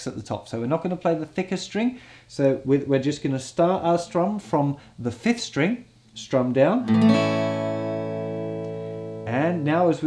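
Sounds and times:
acoustic guitar chord strummed: 6.8 - 10.0.

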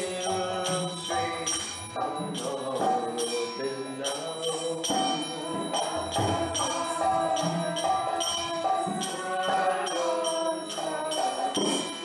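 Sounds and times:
devotional chanting melody: 0.0 - 12.0
small hand cymbals ringing: 0.0 - 12.0.

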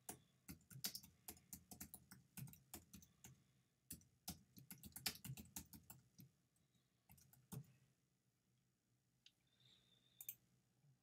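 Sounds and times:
typing on a keyboard: 0.0 - 6.3, 7.1 - 7.7.

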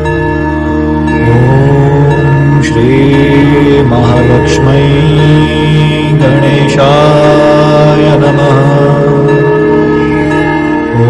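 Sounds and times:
steady low drone: 0.0 - 11.0
person chanting a mantra: 1.2 - 11.0.

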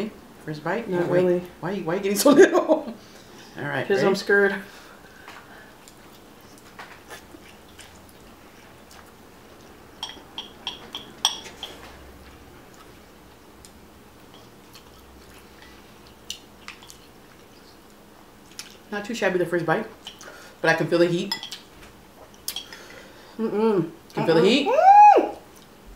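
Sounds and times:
chewing noodles: 5.8 - 9.8, 14.4 - 18.9
chopsticks clicking on glass bowls: 10.0 - 11.8.

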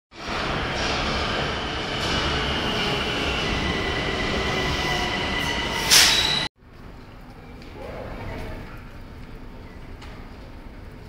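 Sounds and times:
high squeal of train: 0.2 - 6.5
train wheels running on rails: 0.2 - 6.5.

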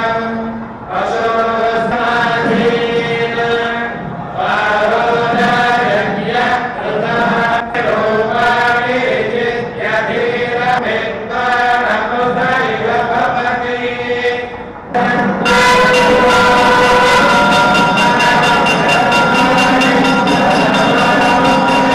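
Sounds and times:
men chanting hymns in unison: 0.0 - 21.9.

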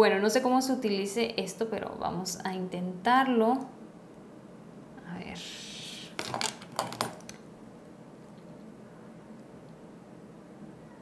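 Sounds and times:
plastic clicks and clatters: 6.2 - 7.4.

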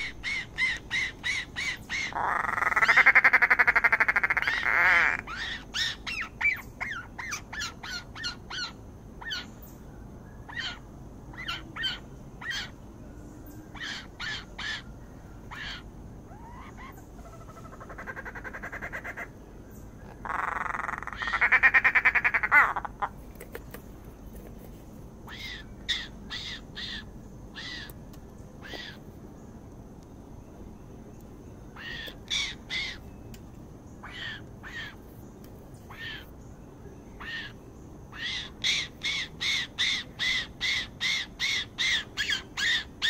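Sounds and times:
birds rasping calls: 0.0 - 9.8, 10.4 - 12.8, 13.5 - 24.6, 25.2 - 29.6, 31.6 - 33.2, 33.8 - 36.6, 37.2 - 43.0.

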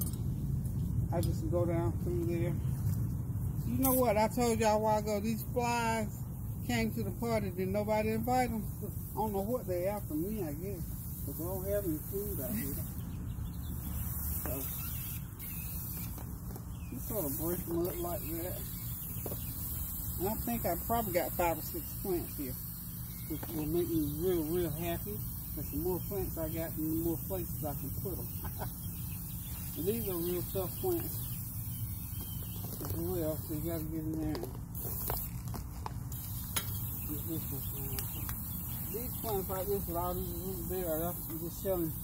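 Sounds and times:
steady low rumble: 0.0 - 41.8
steady low hum: 0.0 - 42.0.

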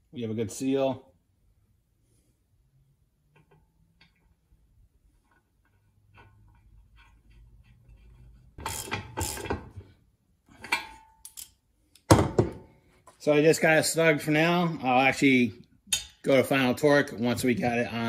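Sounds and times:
hand ratchet clicking: 8.6 - 9.5.

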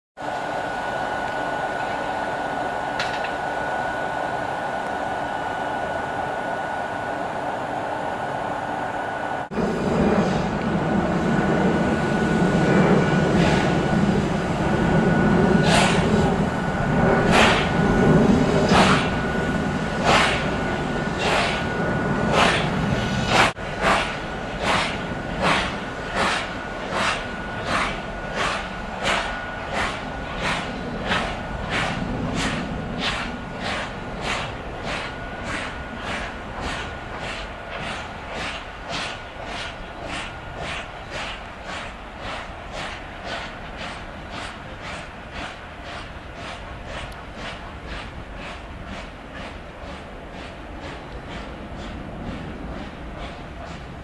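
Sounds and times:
electric locomotive hum and whine: 0.2 - 54.0
steam locomotive chuffing: 0.2 - 54.0.

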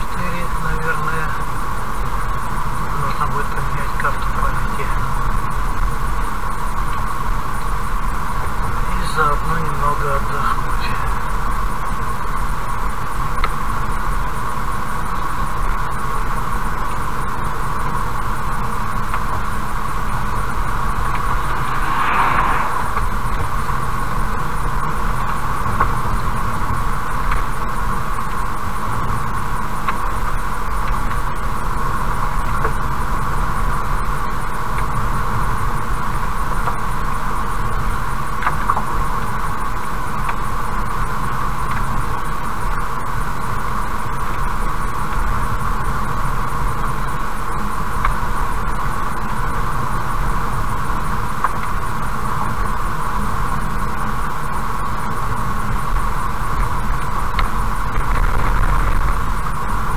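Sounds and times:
road and engine noise in car: 0.0 - 59.9
truck rushing past: 19.8 - 24.8.

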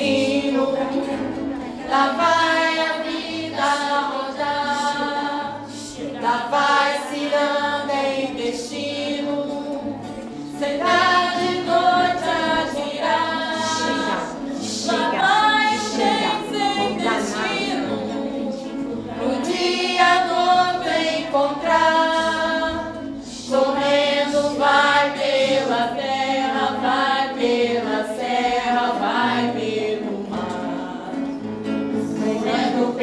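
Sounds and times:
acoustic guitar strumming: 0.0 - 33.0
girls singing together: 0.0 - 33.0.

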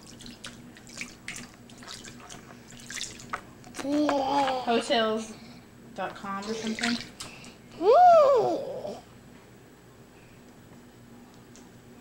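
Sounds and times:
bath water splashing and dripping: 0.0 - 3.4, 6.4 - 7.5
faint steady hum: 0.0 - 12.0.

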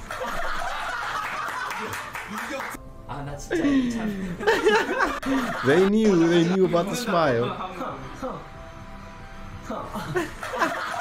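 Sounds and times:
people chuckling: 0.0 - 2.6, 3.6 - 8.0, 9.9 - 11.0.

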